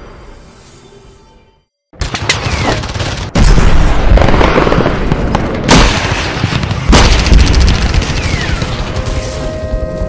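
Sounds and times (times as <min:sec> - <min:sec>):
gunfire crackle: 0:02.0 - 0:09.4.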